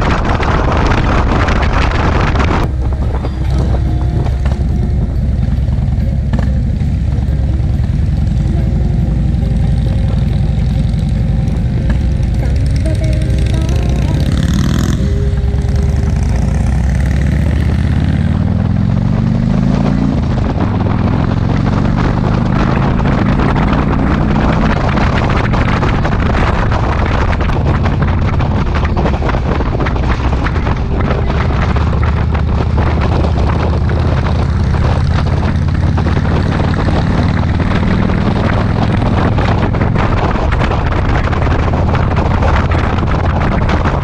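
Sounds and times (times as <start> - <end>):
motorcycle engine rumbling: 0.0 - 44.0
wind noise on microphone: 0.0 - 44.0.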